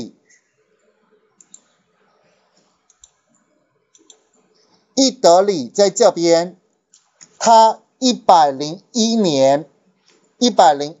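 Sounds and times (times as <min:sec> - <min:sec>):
computer mouse clicks: 0:00.8 - 0:01.8, 0:02.5 - 0:04.5.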